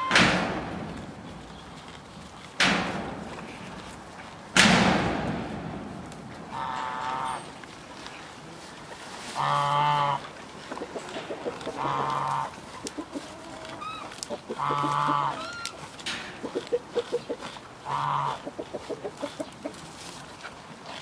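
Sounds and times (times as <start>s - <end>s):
reindeer chewing greens: 0.6s - 4.5s, 5.3s - 21.0s
animal calls: 9.4s - 15.8s, 16.4s - 19.9s.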